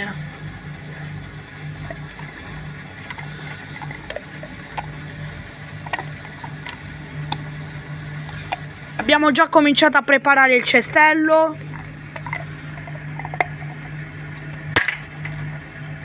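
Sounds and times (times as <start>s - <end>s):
washing machine spin hum: 0.0s - 16.0s.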